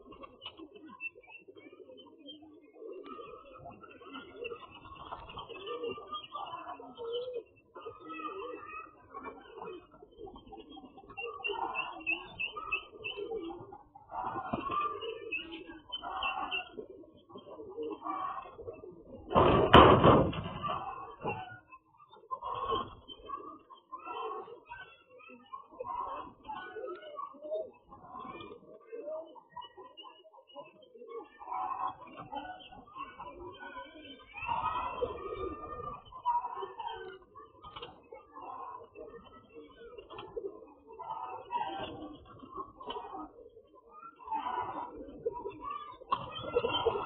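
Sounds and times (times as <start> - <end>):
pigeons cooing: 0.0 - 47.0.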